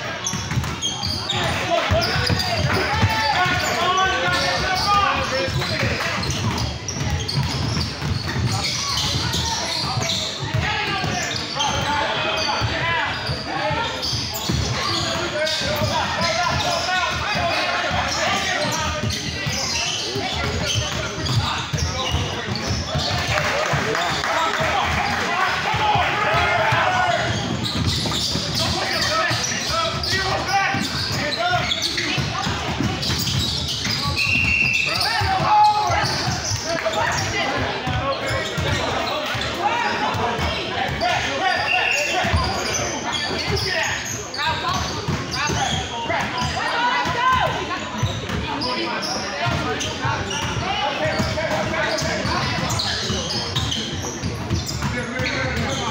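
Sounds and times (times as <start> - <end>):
chatter and calls: 0.0 - 55.9
basketball bouncing on gym floor: 0.2 - 3.7, 4.3 - 11.9, 25.7 - 36.6.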